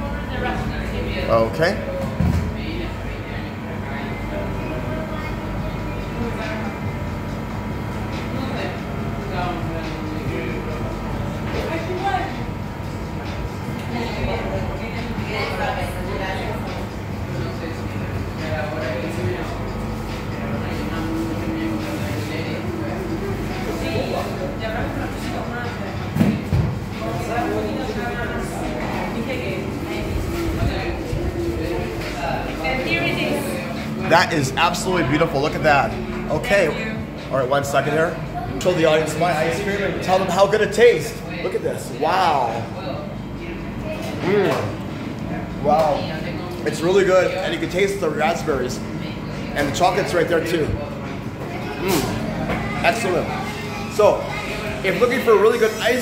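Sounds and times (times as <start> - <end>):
faint voices: 0.0 - 56.0
indistinct talking: 0.0 - 56.0
low mechanical hum: 0.0 - 56.0.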